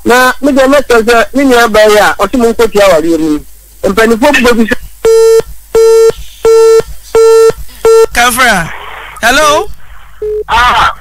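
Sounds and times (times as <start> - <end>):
person speaking: 0.0 - 5.0
telephone busy tone: 5.1 - 8.1.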